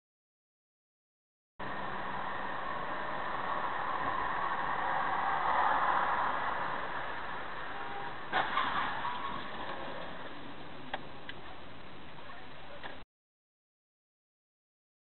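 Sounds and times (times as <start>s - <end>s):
car cabin road and engine noise: 1.6s - 13.0s.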